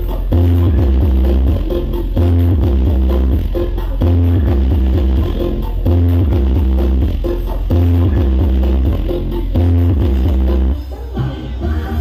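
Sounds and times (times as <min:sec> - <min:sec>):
heavy bass: 0:00.0 - 0:12.0
loud electronic dance music: 0:00.0 - 0:12.0.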